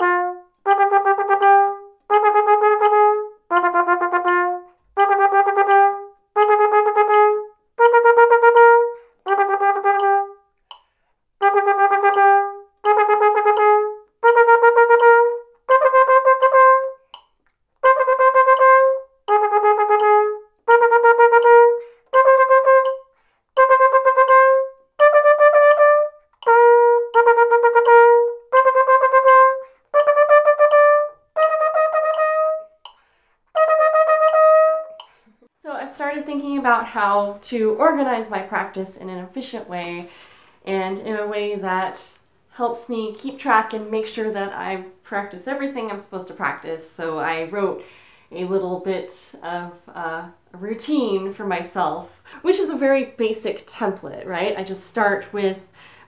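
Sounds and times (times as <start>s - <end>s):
flugelhorn tonguing rapid notes: 0.0s - 10.4s, 11.4s - 17.2s, 17.8s - 35.1s.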